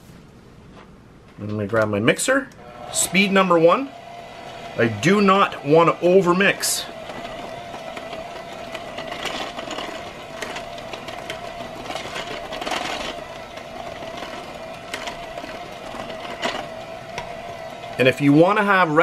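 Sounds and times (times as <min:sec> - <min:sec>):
electric hand mixer humming: 0:02.6 - 0:19.0.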